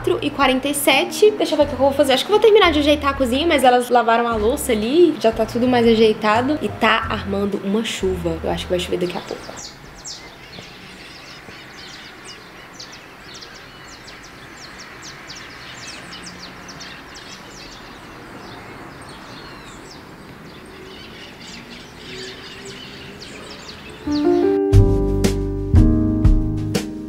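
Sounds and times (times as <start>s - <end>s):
piano music: 0.0s - 9.2s, 24.0s - 27.0s
birds chirping: 0.0s - 24.6s
outdoor background hiss: 0.0s - 24.7s.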